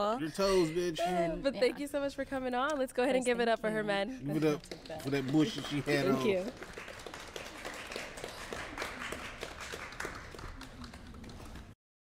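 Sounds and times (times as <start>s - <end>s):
people applauding: 4.4s - 11.8s.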